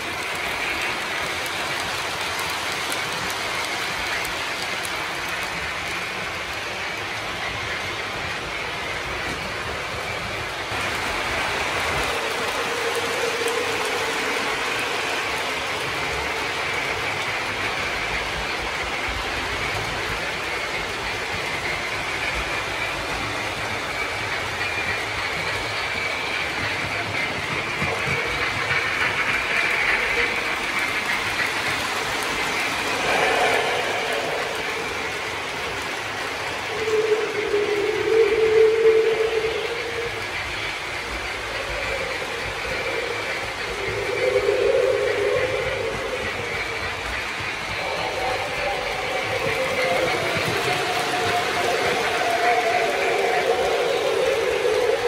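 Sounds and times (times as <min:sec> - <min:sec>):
model trains rolling and clicking: 0:00.0 - 0:55.0.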